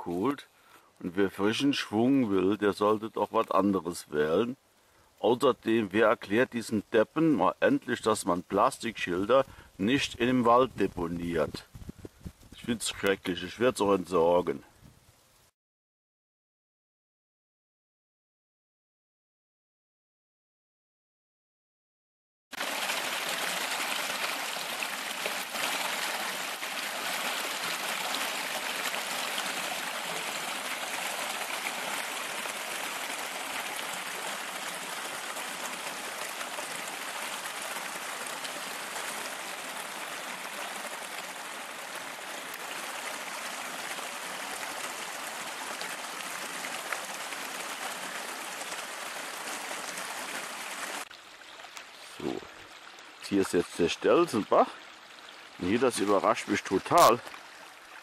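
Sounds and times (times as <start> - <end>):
brook trickling over stones: 22.6 - 58.0.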